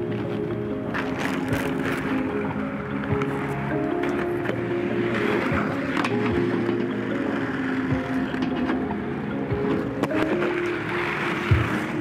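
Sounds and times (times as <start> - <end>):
background music: 0.0 - 12.0
skate wheels rolling on concrete: 0.0 - 12.0.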